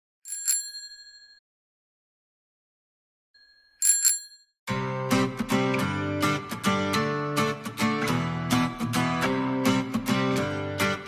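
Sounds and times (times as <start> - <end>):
bicycle bell ringing: 0.3 - 1.4, 3.4 - 4.6.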